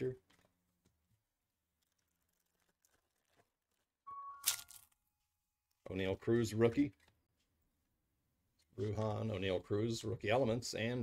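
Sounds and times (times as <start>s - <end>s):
foil wrapper tearing: 1.8s - 5.0s.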